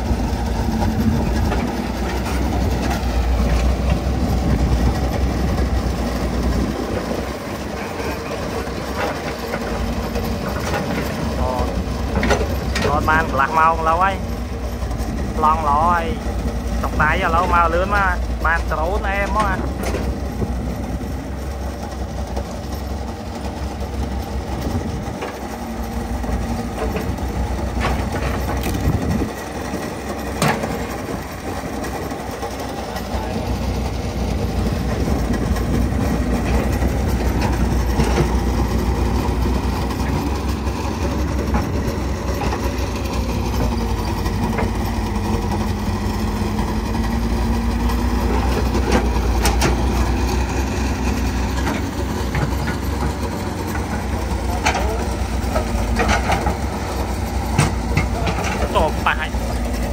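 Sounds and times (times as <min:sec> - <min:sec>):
excavator diesel engine: 0:00.0 - 0:59.9.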